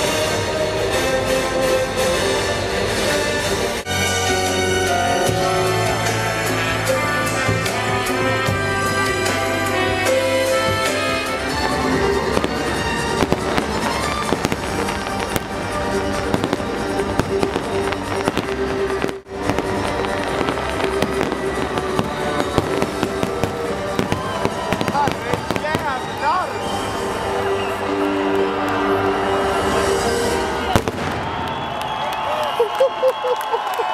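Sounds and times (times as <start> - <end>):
music: 0.0 - 33.9
fireworks banging and crackling: 4.8 - 28.2, 29.3 - 32.2.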